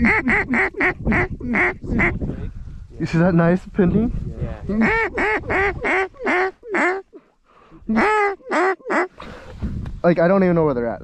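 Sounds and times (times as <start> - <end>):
waterfowl call honks: 7.9 - 9.2.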